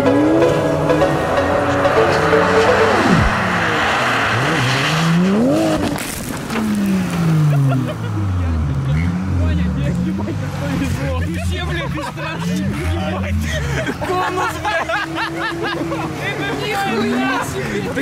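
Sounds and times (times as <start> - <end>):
rushing noise: 0.0 - 7.4
car engines revving: 0.0 - 18.0.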